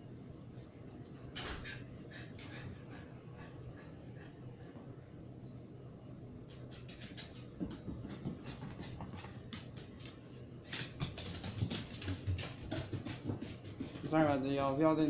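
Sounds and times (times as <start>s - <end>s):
dog paws clicking on stairs: 6.5s - 14.7s.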